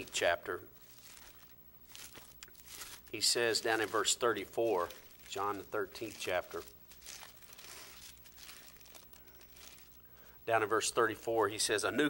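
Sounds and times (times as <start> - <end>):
thin pages rustling: 0.0 - 11.7.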